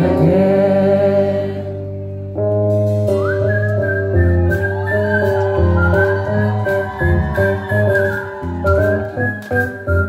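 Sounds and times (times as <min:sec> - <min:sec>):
live rock band: 0:00.0 - 0:10.0
whistled melody: 0:03.0 - 0:10.0.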